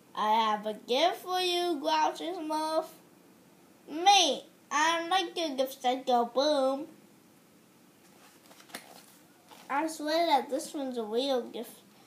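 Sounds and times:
paper pages rustling: 8.0 - 9.8.

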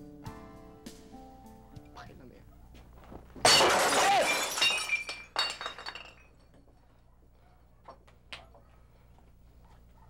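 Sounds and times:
glass shattering: 3.4 - 6.5
glass pieces clinking and tinkling: 3.4 - 6.6.

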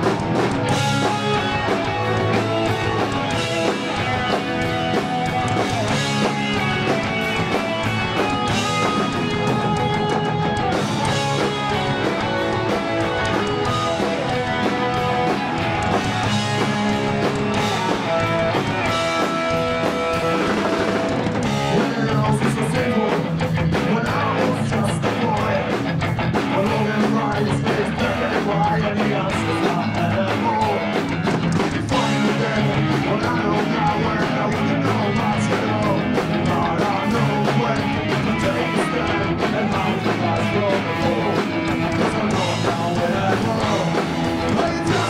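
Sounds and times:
bass guitar: 0.0 - 45.0
distorted electric guitars: 0.0 - 45.0
drum kit: 0.0 - 45.0.

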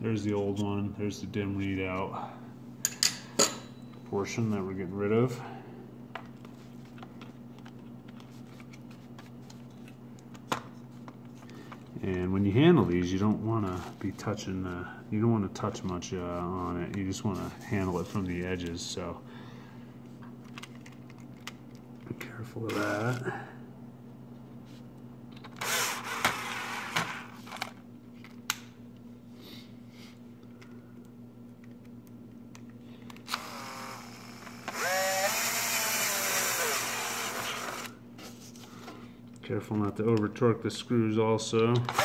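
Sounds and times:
steady low hum: 0.0 - 42.0.

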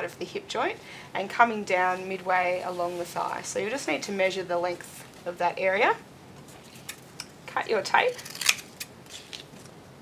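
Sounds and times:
scissors snipping tape: 8.1 - 9.4.

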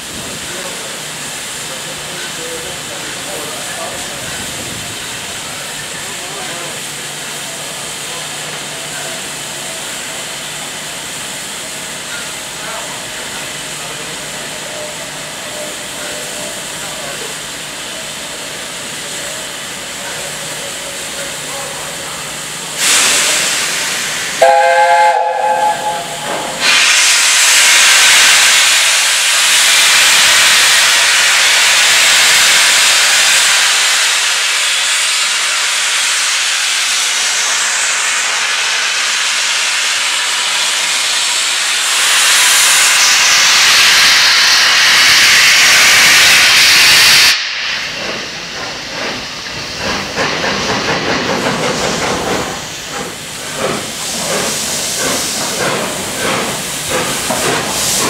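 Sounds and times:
loud hiss of steam: 0.0 - 58.0
steam engine chuffing: 0.0 - 58.0
steam locomotive chime whistle: 24.4 - 26.9.

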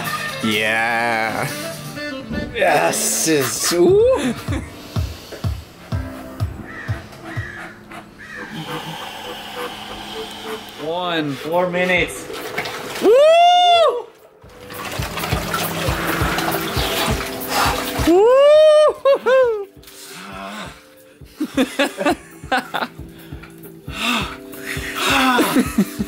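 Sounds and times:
background music: 0.0 - 26.0
icy water sloshing: 10.4 - 13.2, 14.4 - 18.3.

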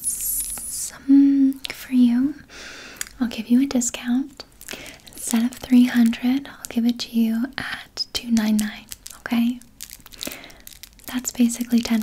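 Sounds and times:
woman whispering: 5.2 - 9.6.

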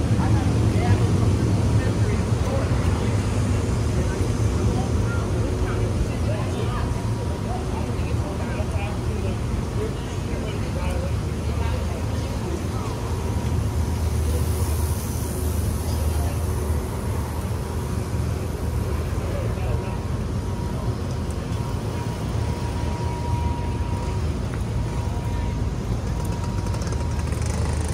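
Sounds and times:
low rumble of traffic: 0.0 - 27.9
pedestrians' voices: 0.0 - 27.9.

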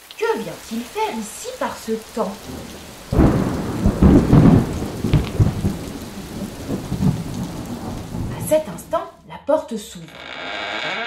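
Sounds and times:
heavy rain: 0.0 - 9.2
thunder rumbling: 0.5 - 9.2.

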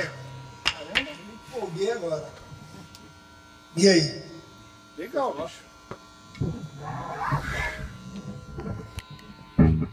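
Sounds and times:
amplifier electrical buzz: 0.0 - 9.9.

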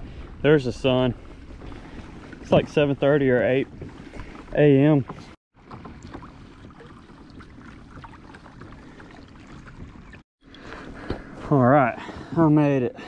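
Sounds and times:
water washing along hull: 1.2 - 10.2.

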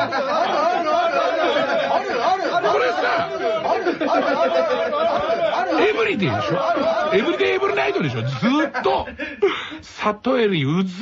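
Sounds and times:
voices calling aaah in chorus: 0.0 - 8.3.

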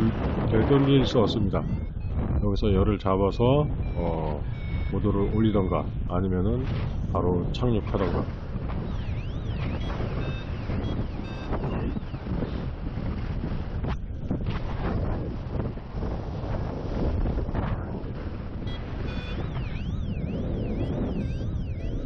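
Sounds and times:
airflow rushing over microphone: 0.0 - 22.0
variometer siren-like alarm: 0.0 - 22.0.

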